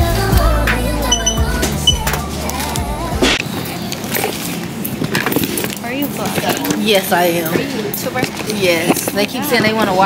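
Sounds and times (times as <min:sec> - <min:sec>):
music with heavy bass: 0:00.0 - 0:03.3
items clicking and rustling: 0:03.9 - 0:10.0.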